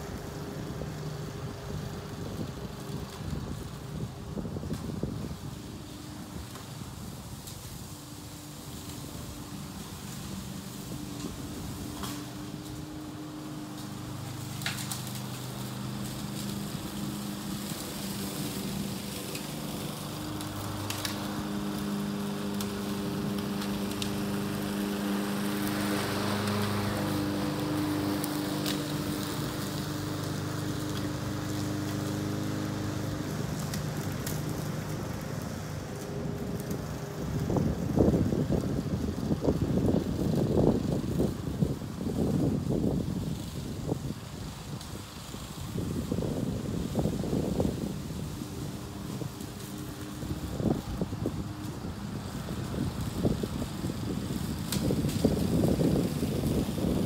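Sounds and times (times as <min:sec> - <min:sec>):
lawn mower engine cutting grass: 0:00.0 - 0:57.0
wind buffeting microphone: 0:00.2 - 0:57.0.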